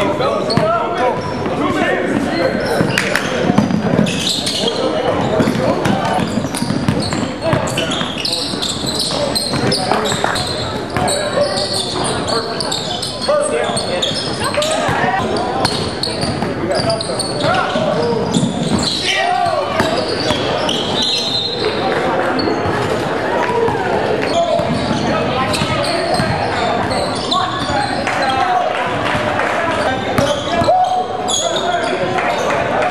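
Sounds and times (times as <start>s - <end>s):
indistinct calls and chatter: 4.1s - 32.9s
basketball bouncing on wooden floor: 5.2s - 8.2s, 9.5s - 10.4s.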